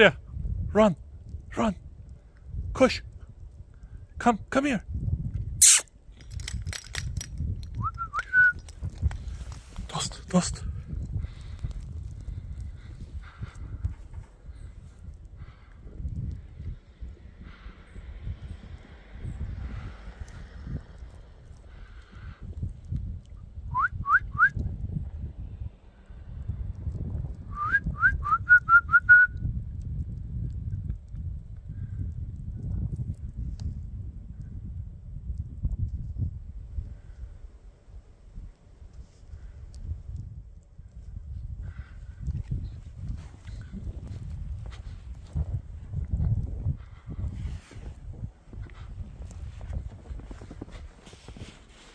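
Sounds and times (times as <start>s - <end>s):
wind rumble on microphone: 0.0s - 51.9s
person whistling: 7.8s - 8.7s, 23.7s - 24.6s, 27.5s - 29.4s.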